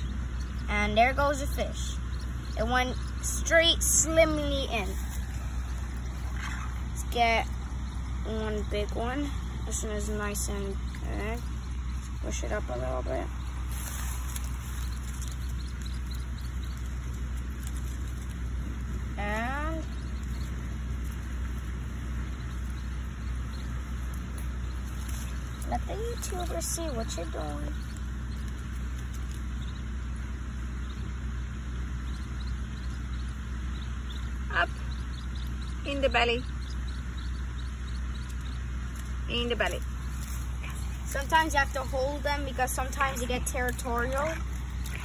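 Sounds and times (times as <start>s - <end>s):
low outdoor rumble: 0.0s - 45.0s.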